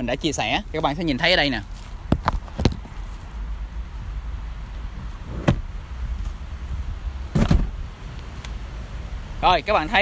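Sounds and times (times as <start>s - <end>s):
car seat clunking into place: 5.3s - 5.7s, 7.3s - 7.7s.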